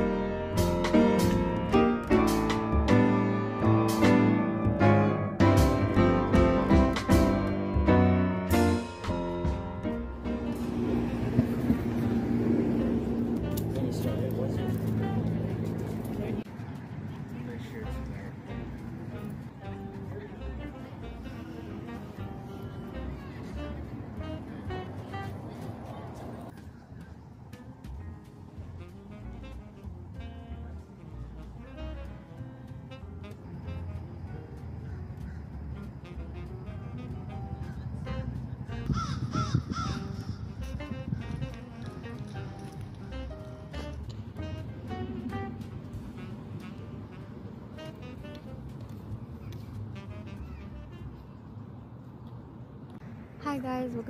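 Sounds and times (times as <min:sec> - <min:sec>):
background music: 0:00.0 - 0:16.4, 0:17.4 - 0:26.5, 0:27.3 - 0:39.0, 0:40.1 - 0:51.2
low traffic rumble: 0:00.0 - 0:54.0
bird harsh calls: 0:38.9 - 0:40.6.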